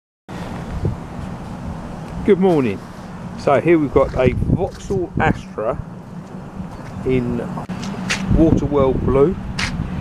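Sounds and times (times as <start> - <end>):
low mechanical hum: 0.3 - 10.0
wind rumble on microphone: 0.3 - 10.0.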